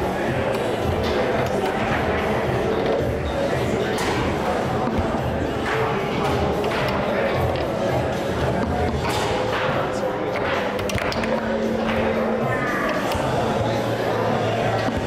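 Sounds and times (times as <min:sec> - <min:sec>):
background music: 0:00.0 - 0:15.0
indistinct voices: 0:00.0 - 0:15.0.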